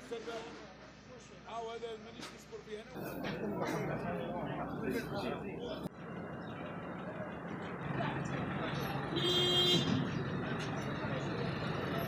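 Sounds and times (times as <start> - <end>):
street traffic: 0.0 - 12.0
truck engine running: 3.0 - 12.0.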